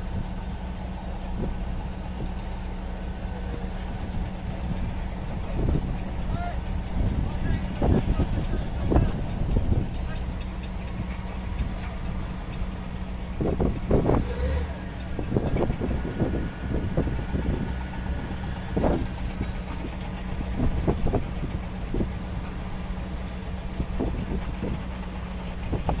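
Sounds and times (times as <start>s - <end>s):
diesel bulldozer engine rumbling: 0.0s - 26.0s
wind on microphone: 12.8s - 22.8s, 23.6s - 25.0s, 25.6s - 26.0s.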